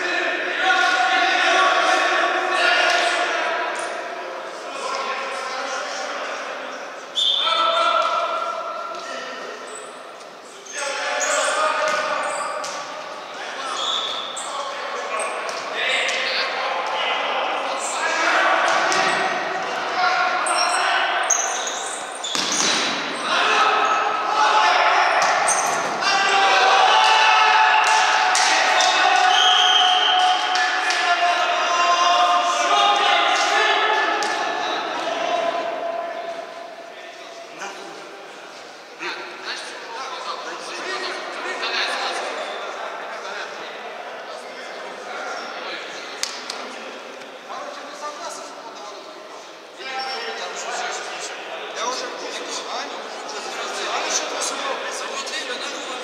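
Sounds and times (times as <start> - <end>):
players shouting: 0.0 - 5.4, 10.7 - 36.9.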